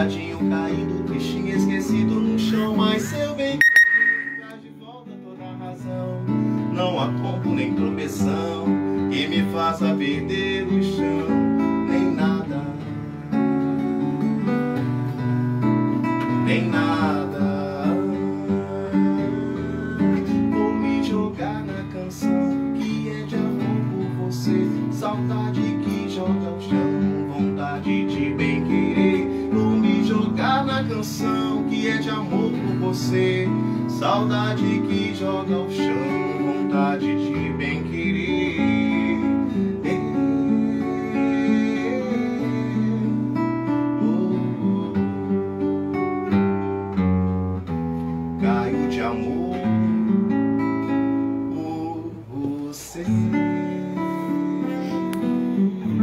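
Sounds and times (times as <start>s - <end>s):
man singing: 0.0s - 13.4s, 16.1s - 45.6s, 48.4s - 50.0s, 51.4s - 56.0s
acoustic guitar: 0.0s - 56.0s.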